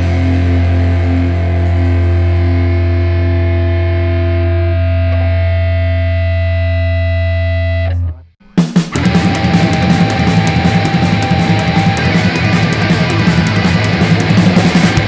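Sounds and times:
heavy rock with drums: 0.0 - 6.3, 8.4 - 15.0
distorted electric guitar chord: 0.0 - 7.9, 8.8 - 15.0.

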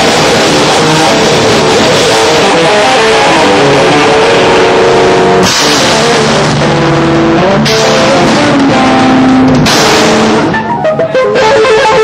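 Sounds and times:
drum kit: 0.0 - 12.0
electric guitar and bass: 0.0 - 12.0.

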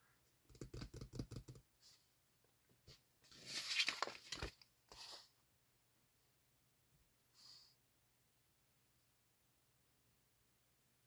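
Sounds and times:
paper rustling: 2.9 - 5.3.

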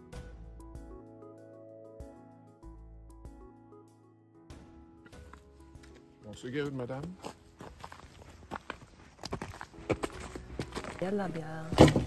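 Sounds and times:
footsteps on gravel and dry leaves: 5.2 - 12.0.

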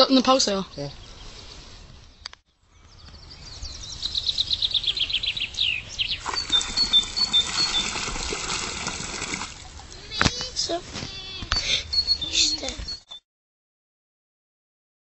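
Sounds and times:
songbird singing: 0.0 - 13.2
water splashing onto wet ground: 6.2 - 10.2.

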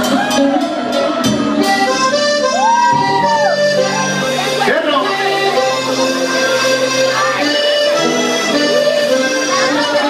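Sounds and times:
accordion music: 0.0 - 10.0.

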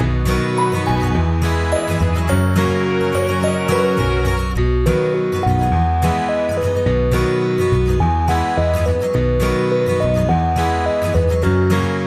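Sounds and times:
acoustic guitar background music: 0.0 - 12.0.

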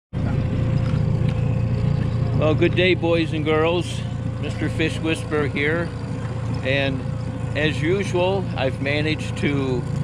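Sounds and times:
boat motor running: 0.1 - 10.0.

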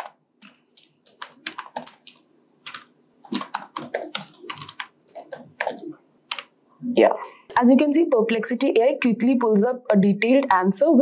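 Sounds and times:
typing on computer keyboard: 0.0 - 6.5.

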